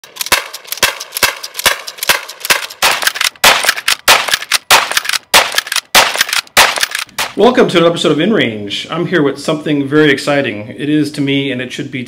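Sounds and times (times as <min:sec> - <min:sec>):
rifle shots with ringing tail: 0:00.0 - 0:07.4.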